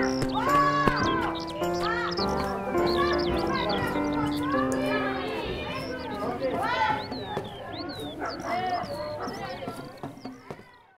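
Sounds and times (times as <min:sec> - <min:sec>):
children shouting and squealing: 0:00.0 - 0:11.0.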